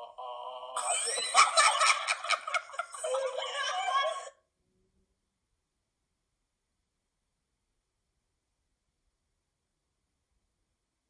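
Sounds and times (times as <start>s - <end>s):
woman laughing: 0.8s - 4.3s.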